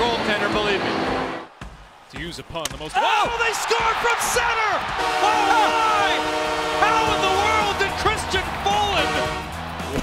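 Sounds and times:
music: 4.8s - 10.0s
goal horn multi-tone chord: 5.0s - 8.2s, 8.8s - 9.6s.

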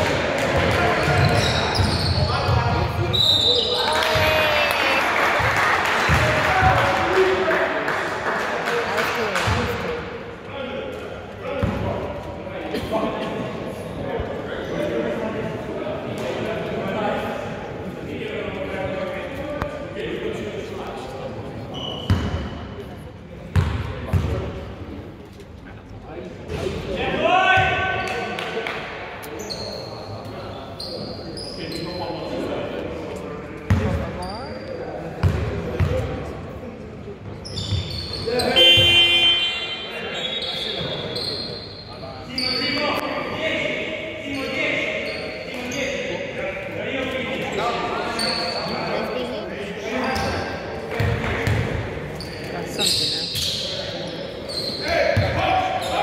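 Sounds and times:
players calling out: 37.8s - 43.4s.

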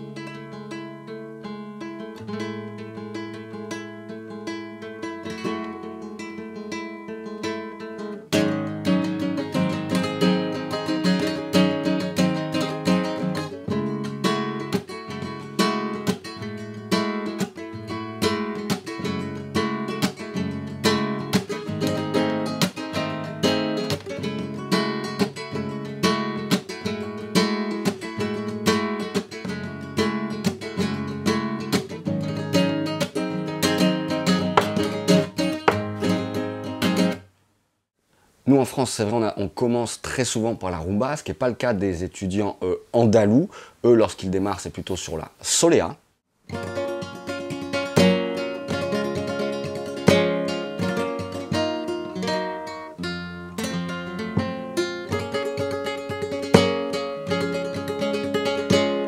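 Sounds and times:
flamenco guitar playing: 0.0s - 37.3s, 46.5s - 59.0s.

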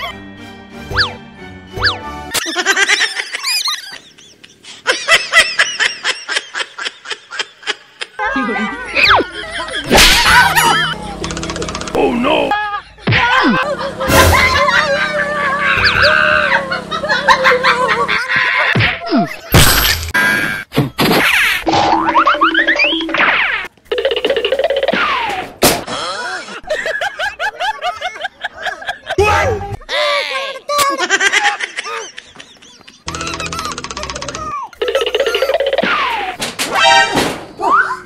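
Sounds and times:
high-pitched laughter: 2.3s - 11.7s, 12.5s - 19.6s, 26.0s - 36.4s.

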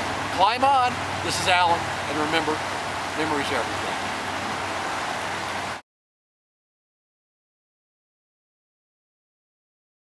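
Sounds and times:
river rushing over rocks: 0.0s - 5.8s.

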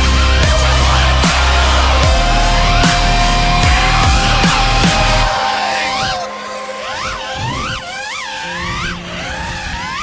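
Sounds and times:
background music with low notes: 0.0s - 10.0s
drone motors whining: 0.0s - 10.0s.

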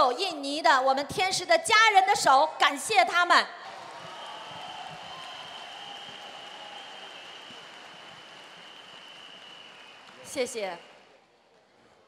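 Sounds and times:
audience applauding: 3.6s - 11.4s.

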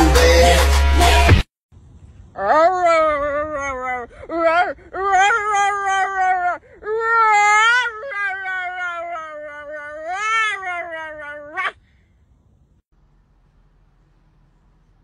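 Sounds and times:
high-pitched wailing cries: 2.4s - 11.8s.

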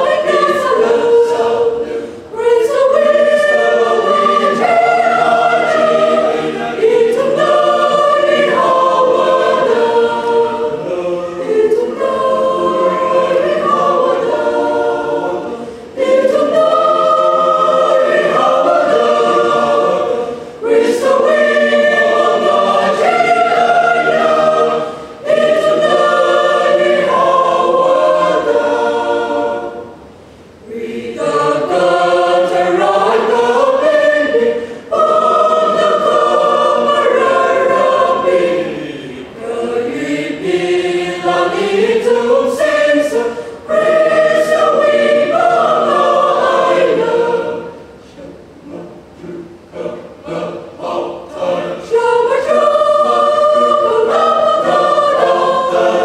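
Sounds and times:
mixed choir singing a cappella: 0.0s - 56.0s.

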